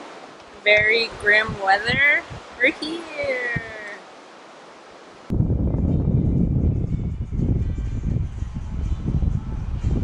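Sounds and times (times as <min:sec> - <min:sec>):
surf hissing on shore: 0:00.0 - 0:05.4
wind buffeting microphone: 0:00.0 - 0:10.0.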